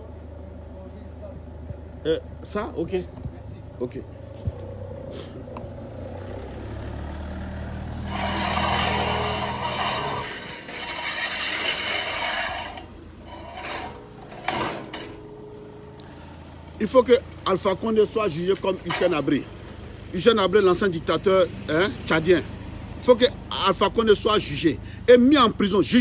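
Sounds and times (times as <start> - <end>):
heavy vehicle engine droning: 0.0 - 26.0
vehicle rushing past: 3.6 - 23.1.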